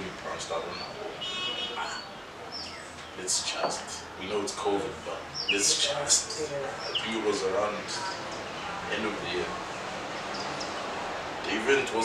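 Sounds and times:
high bird-like chirps: 0:06.8 - 0:07.3.

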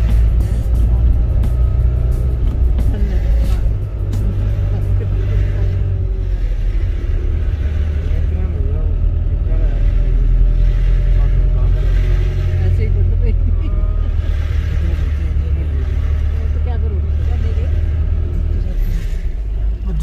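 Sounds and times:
indistinct voices: 0:00.0 - 0:20.0
road noise: 0:00.0 - 0:20.0
vehicle engine rumble: 0:00.0 - 0:20.0.

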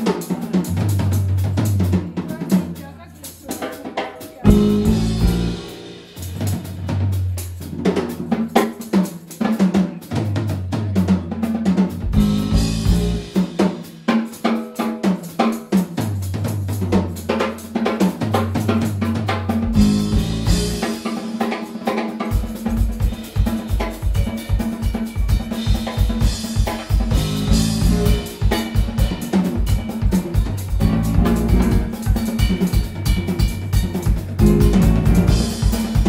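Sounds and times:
drum kit: 0:00.0 - 0:36.0
jazz-rock band playing live: 0:00.0 - 0:36.0
sustained bass notes: 0:04.5 - 0:07.1, 0:12.2 - 0:13.4, 0:19.8 - 0:20.8, 0:27.2 - 0:28.4, 0:30.8 - 0:32.0, 0:34.4 - 0:35.8.

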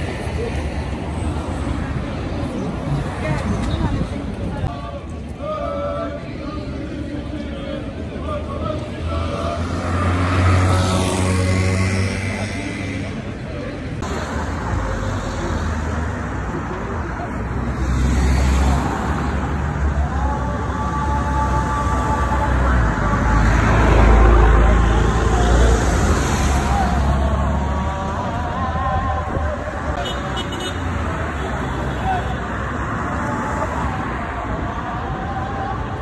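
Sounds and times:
crowd of fans voices: 0:00.0 - 0:36.0
road traffic passing: 0:00.0 - 0:36.0.

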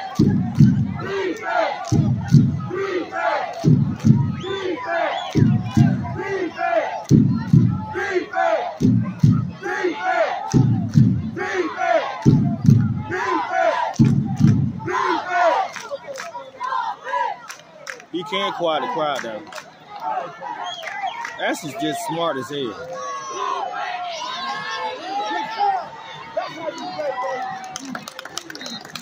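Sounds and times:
low beat: 0:00.0 - 0:15.7
crowd yelling and chanting: 0:00.0 - 0:29.0.

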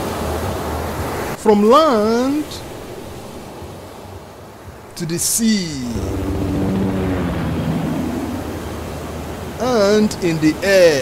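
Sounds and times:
helicopter engine and rotor hum: 0:05.8 - 0:09.8.

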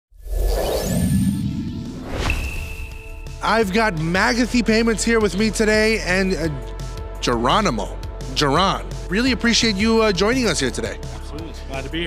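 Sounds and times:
whoosh: 0:00.1 - 0:03.4.

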